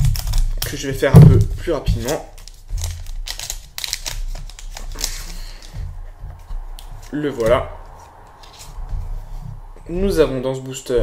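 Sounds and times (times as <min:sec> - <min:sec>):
trading cards rustling: 0:00.0 - 0:08.8
low steady hum: 0:00.0 - 0:11.0.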